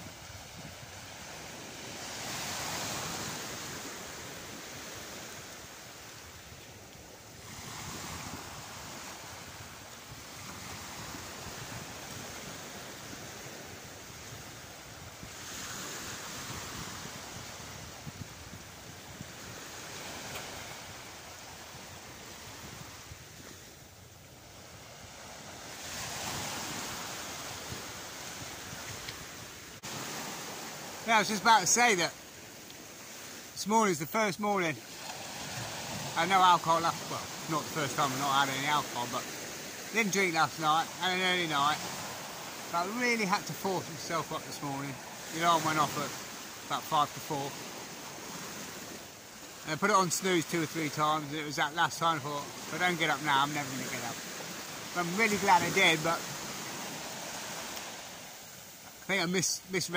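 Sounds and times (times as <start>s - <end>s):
small waves breaking on beach: 0.0s - 59.9s.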